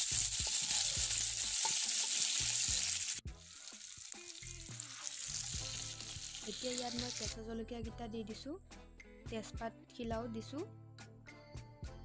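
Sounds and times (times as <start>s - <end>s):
spatula stirring: 0.0s - 4.0s
onions sizzling in hot oil: 0.0s - 7.3s.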